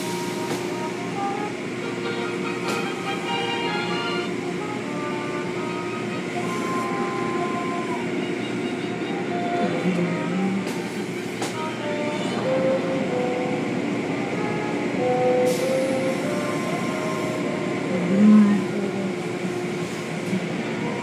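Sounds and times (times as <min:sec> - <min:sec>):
machinery rumble: 0:00.0 - 0:21.0.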